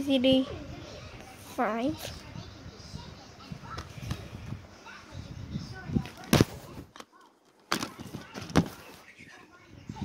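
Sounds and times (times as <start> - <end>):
faint child's voice: 0.0 - 10.0
plastic case knocking and rustling: 7.7 - 8.8.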